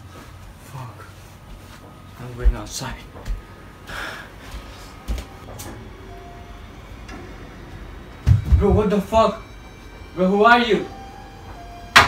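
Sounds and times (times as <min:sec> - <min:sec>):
hurried footsteps: 0:00.0 - 0:05.8, 0:08.2 - 0:09.3
knocks and thumps: 0:08.2 - 0:08.9.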